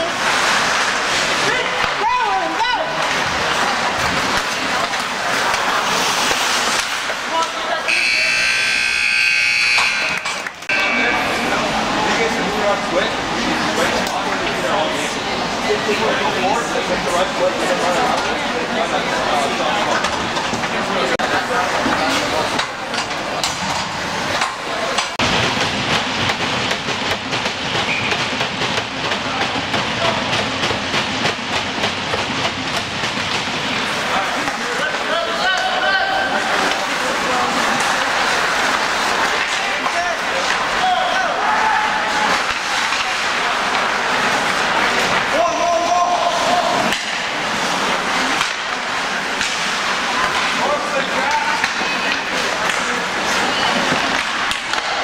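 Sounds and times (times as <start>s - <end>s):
skates scraping ice: 0.0s - 8.5s, 32.1s - 41.3s, 42.0s - 55.0s
sticks and puck clacking: 0.2s - 8.0s, 36.4s - 41.2s, 42.0s - 55.0s
indistinct voices calling out: 7.8s - 12.1s.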